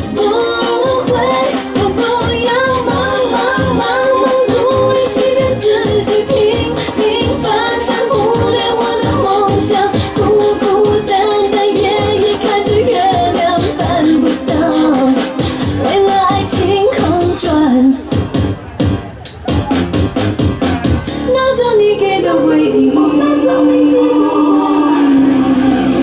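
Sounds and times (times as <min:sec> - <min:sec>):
pop dance song with singing: 0:00.0 - 0:18.5, 0:21.1 - 0:26.0.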